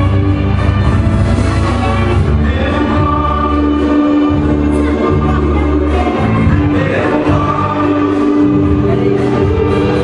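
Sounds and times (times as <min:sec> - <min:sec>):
bass line: 0:00.0 - 0:10.0
person singing long held notes: 0:01.8 - 0:10.0.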